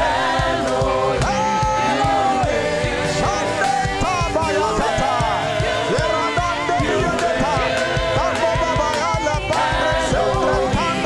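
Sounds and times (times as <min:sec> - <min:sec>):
band accompaniment: 0:00.0 - 0:11.0
female backing singers: 0:00.0 - 0:11.0
steady low drum beat: 0:00.0 - 0:11.0
male lead singer: 0:01.2 - 0:11.0.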